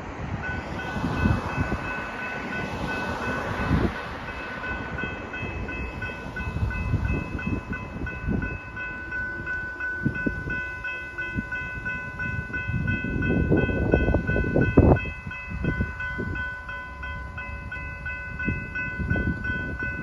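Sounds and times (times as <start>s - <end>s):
cars driving past: 0.0s - 7.6s
level crossing warning bell: 0.4s - 20.0s.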